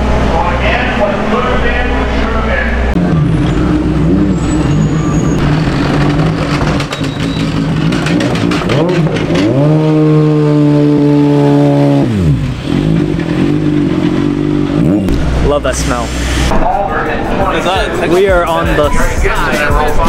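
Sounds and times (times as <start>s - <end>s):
race car engine revving: 0.0s - 19.4s.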